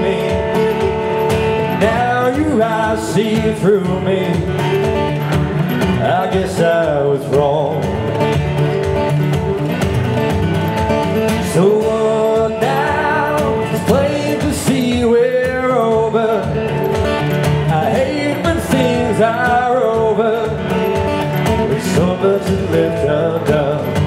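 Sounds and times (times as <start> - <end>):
man singing: 0.0 - 8.3, 11.3 - 24.0
acoustic guitar strumming: 0.0 - 24.0.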